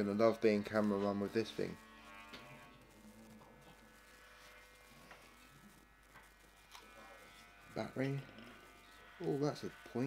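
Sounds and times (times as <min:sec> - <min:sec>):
faint electrical buzz: 0:00.0 - 0:10.0.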